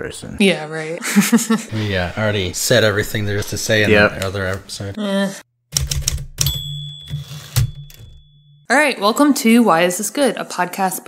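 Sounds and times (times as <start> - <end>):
typewriter bell ding: 6.4 - 8.7.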